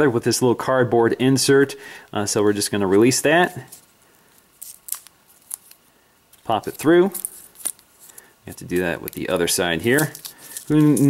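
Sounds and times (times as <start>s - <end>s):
handling noise of cardboard: 3.4s - 11.0s.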